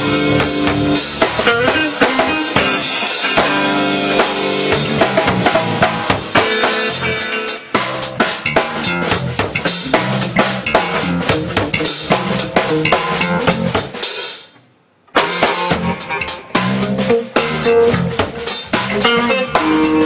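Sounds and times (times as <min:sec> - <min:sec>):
electric bass line: 0:00.0 - 0:14.0, 0:15.2 - 0:20.0
electric guitar: 0:00.0 - 0:14.0, 0:15.1 - 0:20.0
drum kit: 0:00.0 - 0:20.0.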